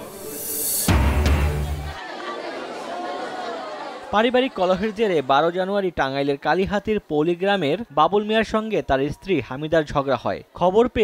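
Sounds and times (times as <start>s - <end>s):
crowd chattering: 0.0s - 8.3s.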